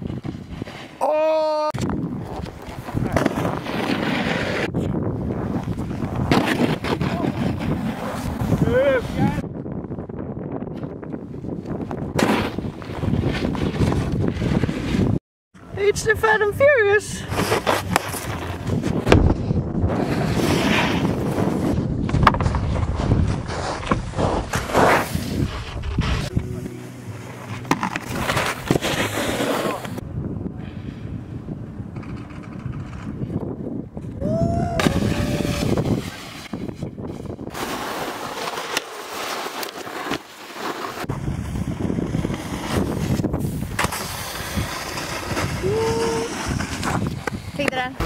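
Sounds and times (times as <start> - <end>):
snowboard scraping over hard snow: 0.0 - 1.0, 2.1 - 9.4, 12.0 - 15.2, 19.8 - 26.4, 27.3 - 30.0, 35.0 - 47.9.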